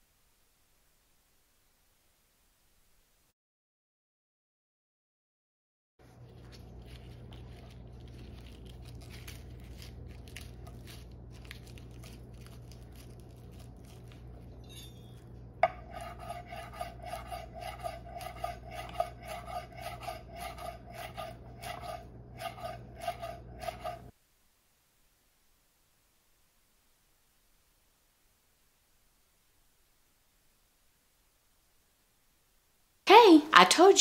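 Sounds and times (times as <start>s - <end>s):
hands rustling leaves: 6.0s - 14.6s
knife chopping on wooden board: 15.6s - 24.1s.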